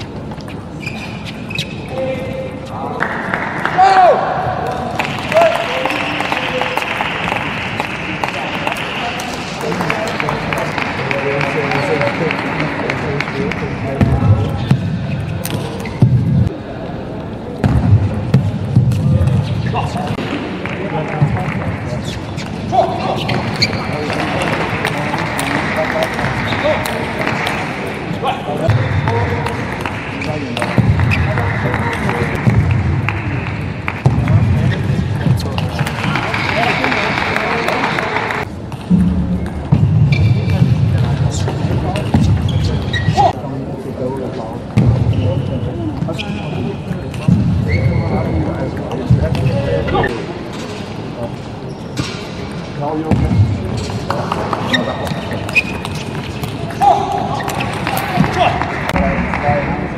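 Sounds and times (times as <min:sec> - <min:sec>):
crowd noise and voices: 0:00.0 - 0:59.9.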